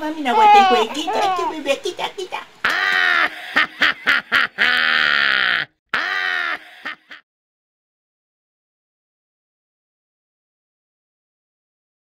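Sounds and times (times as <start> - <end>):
person vocalizing: 4.5 - 7.2.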